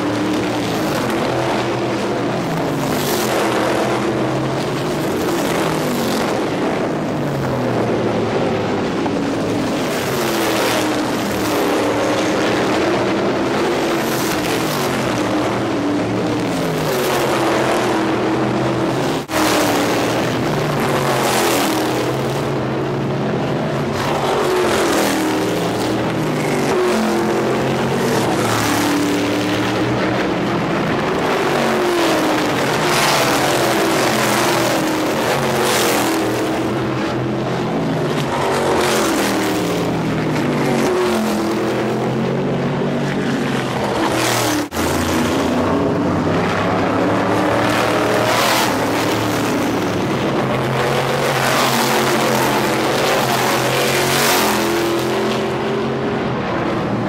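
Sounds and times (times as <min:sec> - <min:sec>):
race car engines passing: 0:00.0 - 0:57.0.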